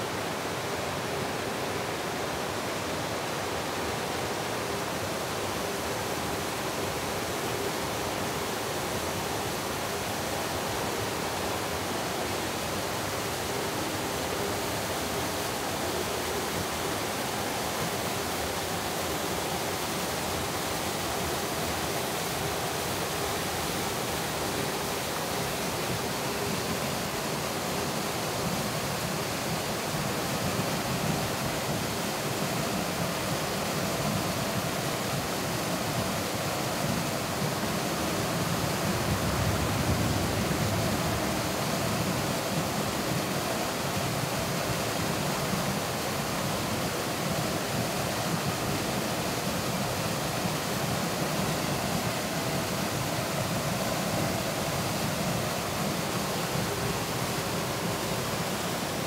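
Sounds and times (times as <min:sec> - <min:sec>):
waterfall rushing into pool: 0:00.0 - 0:59.0.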